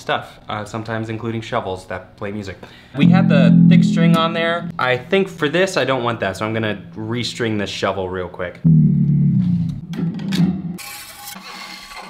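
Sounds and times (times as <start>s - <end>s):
fingers rubbing string: 3.0s - 4.8s
electric guitar string low note: 3.0s - 5.4s, 6.3s - 7.8s, 8.6s - 9.8s.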